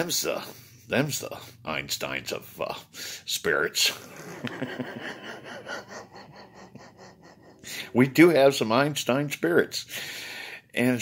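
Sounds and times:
man chuckling quietly: 3.9 - 8.1.

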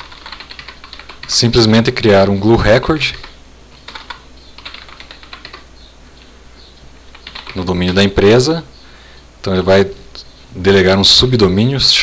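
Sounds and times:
keyboard typing: 0.0 - 1.4, 3.1 - 5.7, 7.1 - 8.2
steady low hum: 0.0 - 12.0.

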